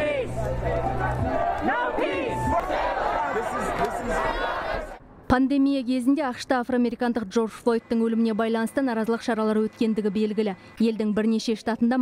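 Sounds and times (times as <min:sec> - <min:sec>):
crowd calling out: 0:00.0 - 0:05.0.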